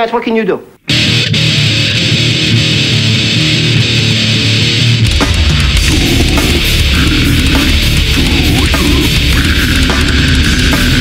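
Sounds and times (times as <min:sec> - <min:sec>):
distorted electric guitar riff: 0:00.8 - 0:11.0
bass guitar: 0:00.9 - 0:11.0.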